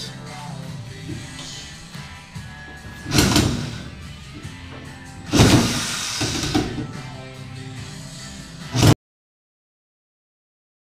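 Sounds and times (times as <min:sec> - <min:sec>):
music playing: 0:00.0 - 0:09.0.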